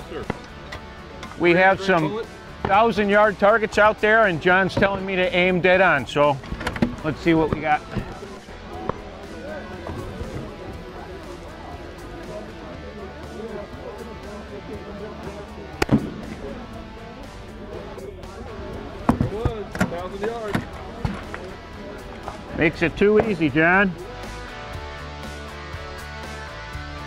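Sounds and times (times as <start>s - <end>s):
background music: 0.0s - 27.0s
rifle shot: 15.8s - 16.4s.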